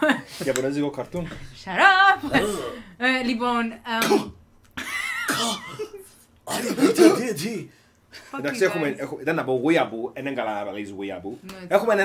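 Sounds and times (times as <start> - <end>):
person coughing: 2.3 - 2.9, 4.0 - 7.4.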